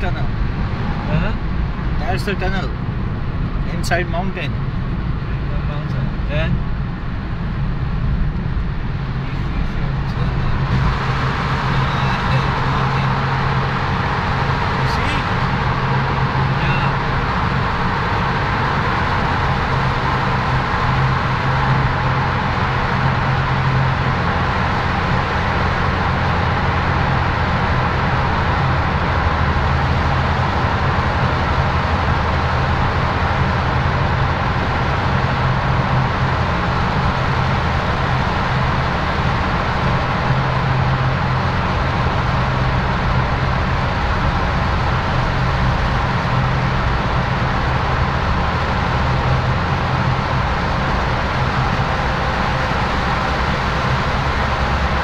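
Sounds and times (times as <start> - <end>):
car driving through tunnel: 0.0 - 55.0
tyre and engine noise: 0.0 - 55.0.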